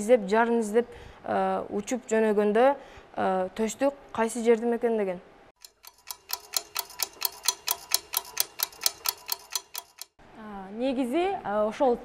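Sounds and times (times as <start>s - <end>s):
fast clock ticks: 5.6s - 10.2s.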